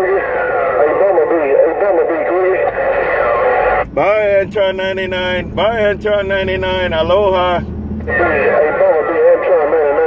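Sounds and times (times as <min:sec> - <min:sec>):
radio voice traffic: 0:00.0 - 0:10.0.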